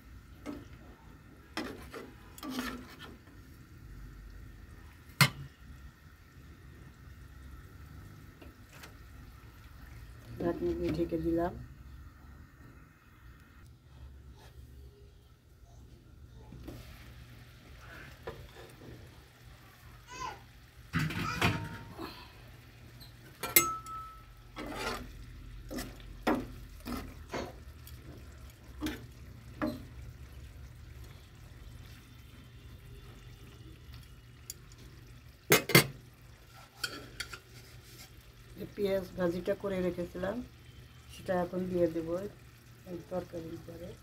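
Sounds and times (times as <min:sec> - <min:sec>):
spatula stirring and knocking in pan: 0:00.4 - 0:03.4, 0:23.5 - 0:30.2.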